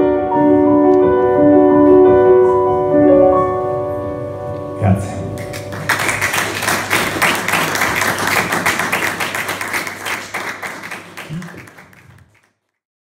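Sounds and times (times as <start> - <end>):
audience applauding: 5.4 - 12.8.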